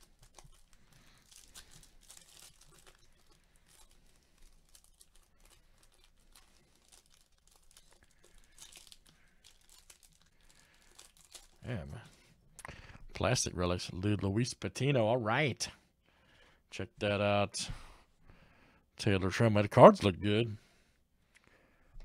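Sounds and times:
plastic wrapper crinkling and tearing: 0:00.0 - 0:12.0.

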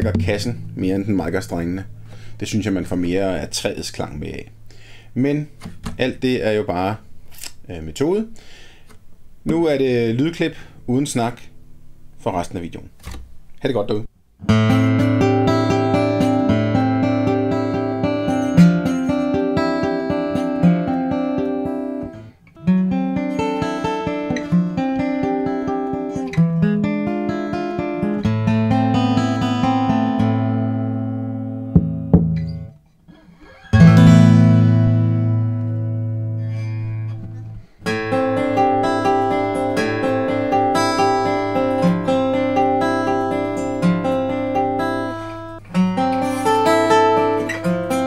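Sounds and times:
acoustic guitar strumming chords: 0:00.0 - 0:13.4, 0:14.4 - 0:48.0.

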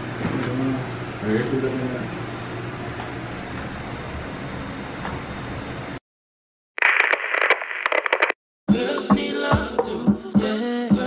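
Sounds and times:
tinny radio-like clip crackling: 0:06.8 - 0:08.4
music: 0:08.7 - 0:11.0.

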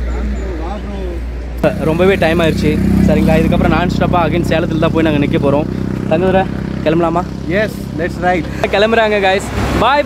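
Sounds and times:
men talking: 0:00.0 - 0:10.0
motorcycle engine idling: 0:01.6 - 0:08.6.

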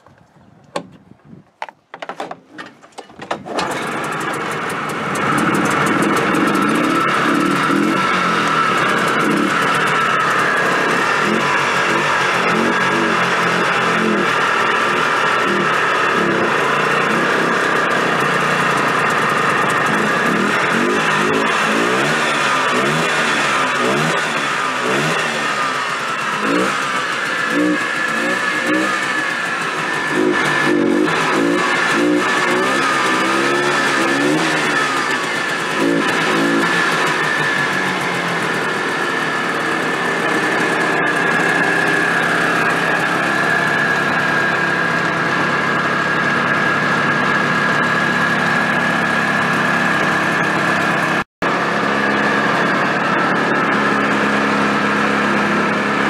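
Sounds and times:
snowmobile engine revving: 0:03.5 - 0:56.0.

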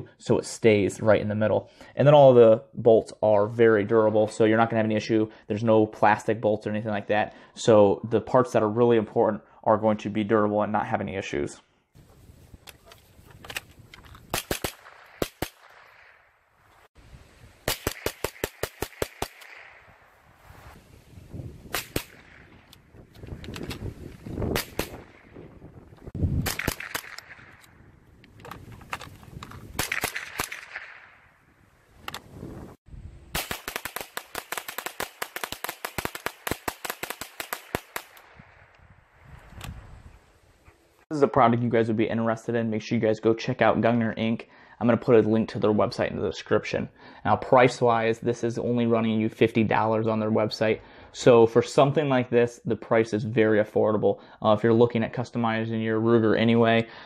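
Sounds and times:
rifle shots: 0:14.3 - 0:16.2, 0:17.6 - 0:20.2, 0:21.7 - 0:22.8, 0:24.4 - 0:25.4, 0:26.4 - 0:27.8, 0:29.8 - 0:31.4, 0:33.3 - 0:38.7.

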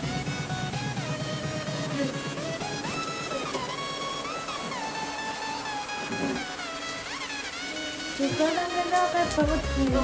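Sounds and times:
sliding pitched melody music: 0:00.0 - 0:10.0.

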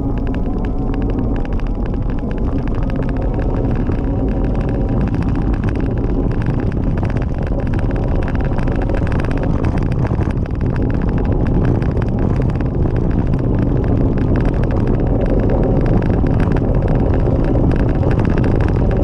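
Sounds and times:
wind rumble on microphone: 0:00.0 - 0:19.0.

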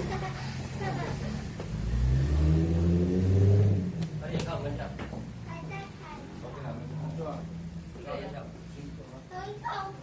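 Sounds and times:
engine revving: 0:01.1 - 0:04.9.

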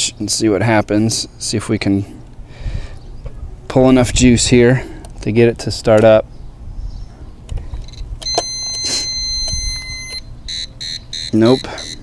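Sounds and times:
inverter alarm buzzer beeping: 0:07.8 - 0:12.0.

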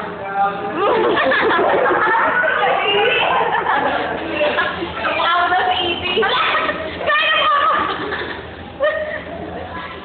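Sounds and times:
girls laughing in squeals: 0:06.3 - 0:09.5.

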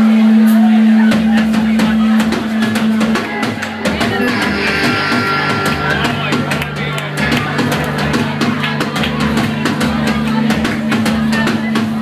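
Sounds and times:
bass guitar: 0:00.0 - 0:12.0
drum kit: 0:01.0 - 0:12.0
electric guitar: 0:01.8 - 0:12.0.

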